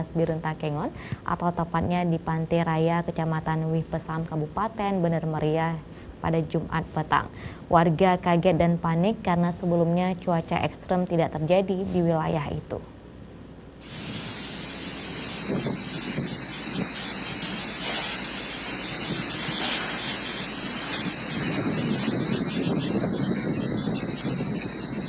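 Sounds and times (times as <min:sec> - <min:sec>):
gusty wind buffeting microphone: 0:13.8 - 0:25.0.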